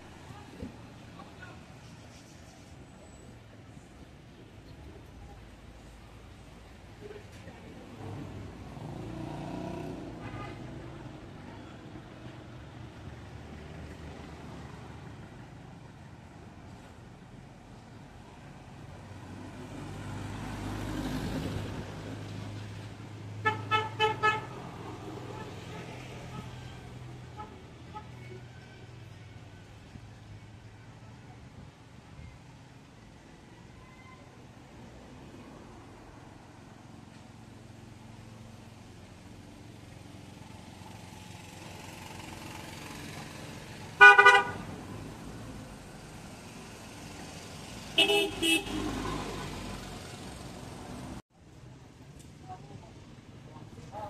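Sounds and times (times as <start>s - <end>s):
street traffic rumbling: 0.0s - 54.0s
vehicle horn toots: 23.4s - 24.6s, 44.0s - 44.6s, 48.0s - 49.5s.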